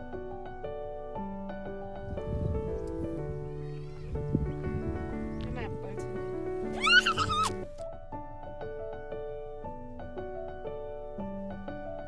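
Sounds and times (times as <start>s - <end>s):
background music: 0.0s - 12.0s
high wavering cry: 6.7s - 7.6s.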